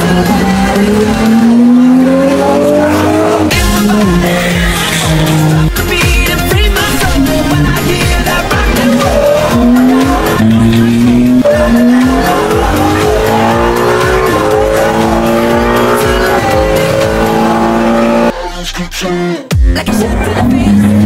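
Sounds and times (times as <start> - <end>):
race car engine accelerating: 0.0 - 5.9, 6.8 - 18.3
music with steady beat: 0.0 - 18.3, 19.5 - 20.9.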